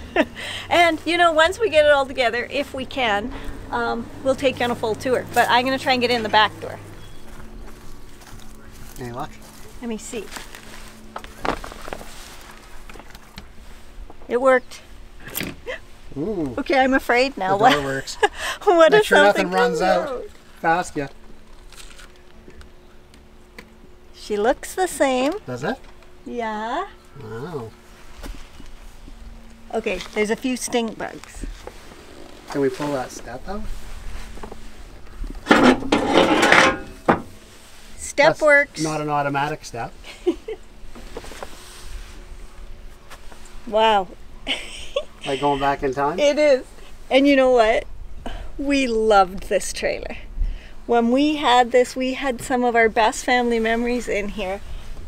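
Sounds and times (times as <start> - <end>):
metal step scraping slide: 35.4 - 37.5.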